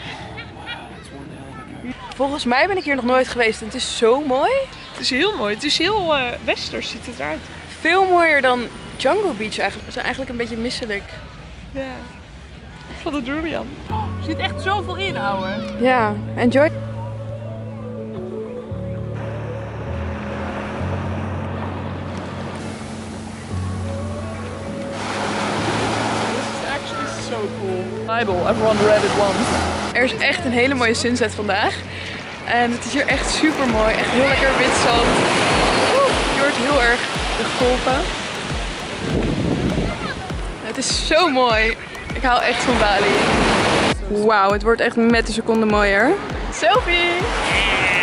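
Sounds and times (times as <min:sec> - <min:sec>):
background music with slow bass: 0:13.6 - 0:48.0
surf breaking on beach: 0:24.9 - 0:30.8, 0:32.2 - 0:44.0, 0:46.2 - 0:48.0
wind buffeting microphone: 0:25.5 - 0:48.0.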